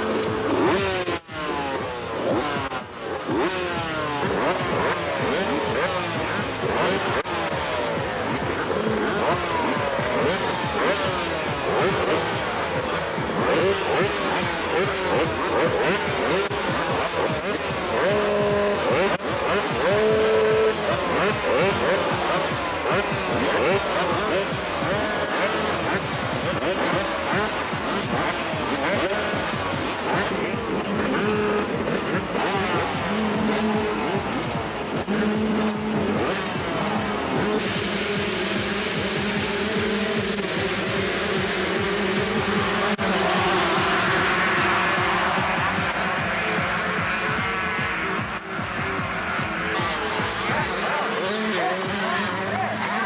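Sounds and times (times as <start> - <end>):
motocross bikes revving: 0.0 - 53.0.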